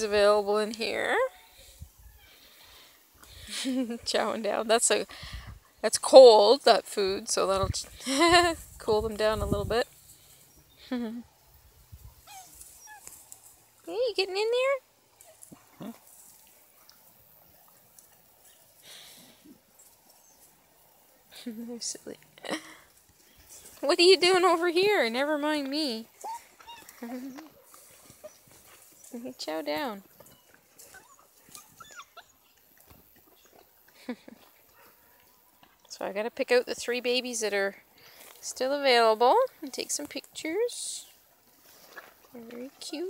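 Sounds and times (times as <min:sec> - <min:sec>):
puppies whimpering: 0:12.2 - 0:13.0, 0:26.2 - 0:29.1, 0:30.3 - 0:32.8
puppy high squeaks: 0:12.2 - 0:13.0, 0:30.9 - 0:32.5.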